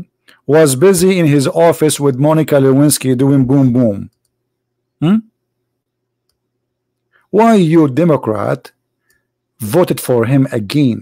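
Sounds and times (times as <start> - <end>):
man saying hmm questioningly: 5.0 - 5.3.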